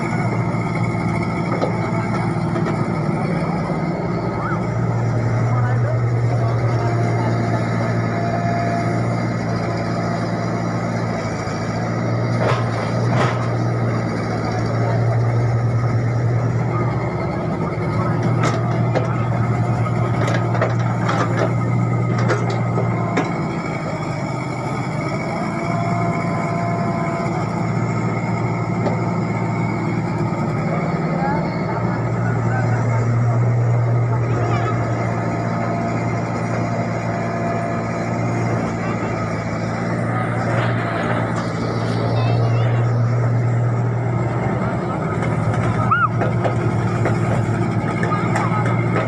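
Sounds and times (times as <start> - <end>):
excavator diesel engine running: 0.0 - 49.0.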